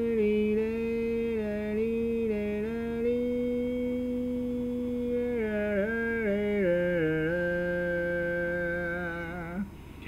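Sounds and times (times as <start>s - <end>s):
person humming a long note: 0.0s - 9.8s.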